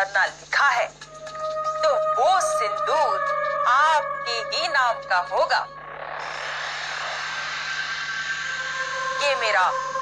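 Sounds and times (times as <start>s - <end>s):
faint held tones: 1.0s - 10.0s
rushing hiss-like drone: 5.8s - 10.0s.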